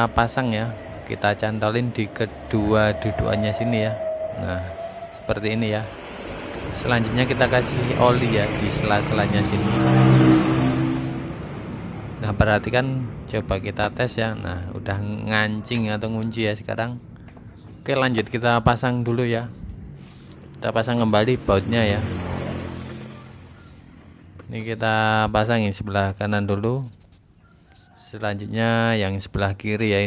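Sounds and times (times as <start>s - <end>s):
vehicle engine humming: 0.0s - 25.5s.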